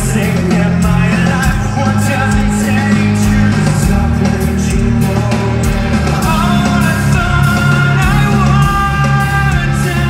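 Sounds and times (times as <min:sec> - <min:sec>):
hard rock band playing: 0:00.0 - 0:10.0
singer's voice: 0:00.0 - 0:10.0.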